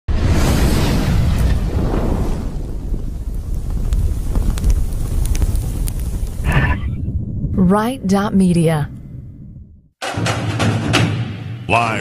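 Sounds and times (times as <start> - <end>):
fire crackles: 0.1 - 8.6
deep fire rumble: 0.1 - 9.9.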